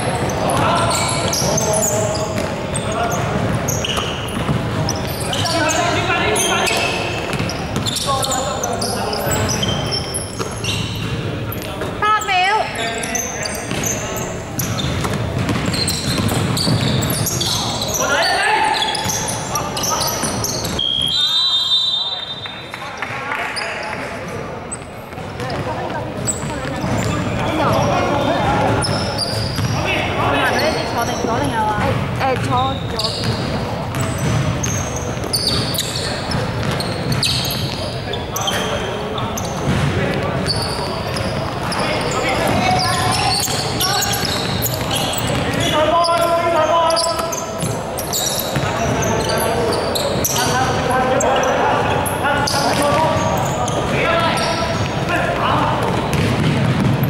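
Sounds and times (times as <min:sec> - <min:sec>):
basketball bouncing: 0:00.1 - 0:05.6, 0:06.6 - 0:08.1, 0:13.6 - 0:17.6, 0:25.1 - 0:29.8, 0:31.0 - 0:37.8, 0:39.4 - 0:46.3, 0:52.5 - 0:57.0.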